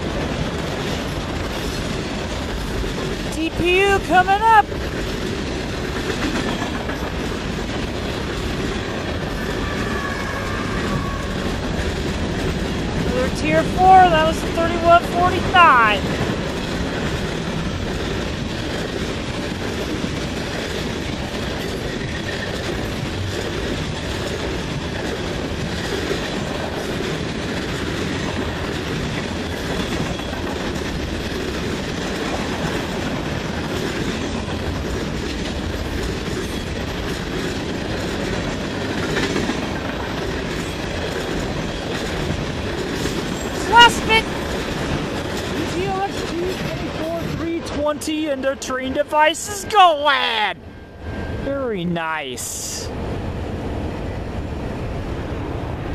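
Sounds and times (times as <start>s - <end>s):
freight cars rolling on rails: 0.0s - 51.7s.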